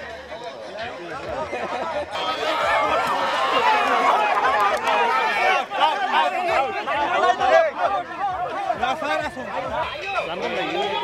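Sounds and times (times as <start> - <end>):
crowd shouting and yelling: 0.0 - 11.0.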